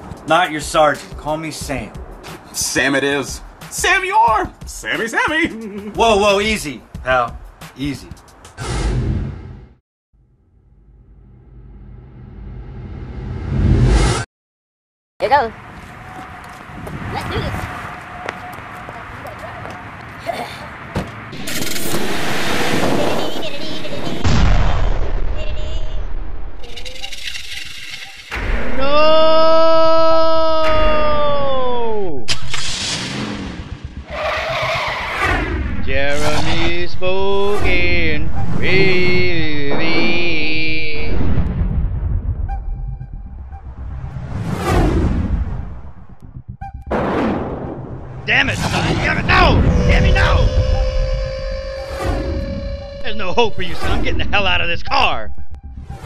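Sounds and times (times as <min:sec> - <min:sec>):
whoosh sound effects: 0:21.3 - 0:25.2, 0:32.2 - 0:34.2, 0:35.1 - 0:50.9.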